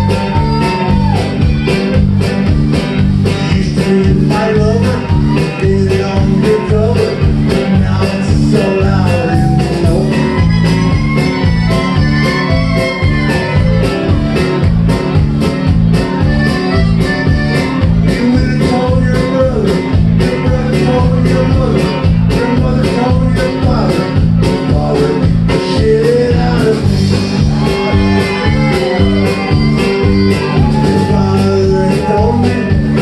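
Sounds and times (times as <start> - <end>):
drums: 0.0 - 33.0
electric bass: 0.0 - 33.0
live country band playing: 0.0 - 33.0
twelve-string guitar: 0.0 - 33.0
piano accordion: 10.2 - 18.4, 26.9 - 30.6.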